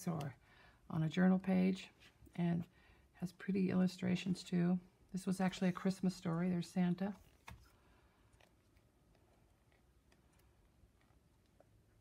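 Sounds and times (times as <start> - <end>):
book pages turning: 7.1 - 11.2.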